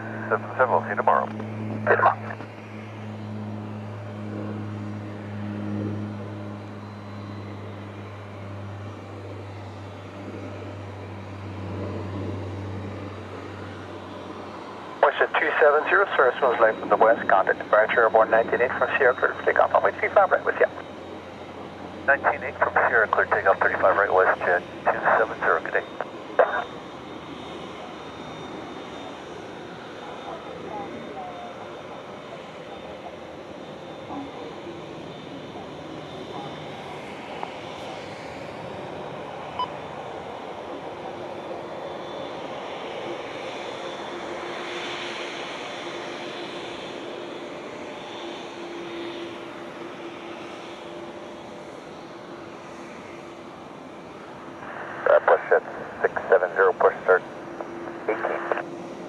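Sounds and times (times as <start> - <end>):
jet engines idling: 0.0 - 59.0.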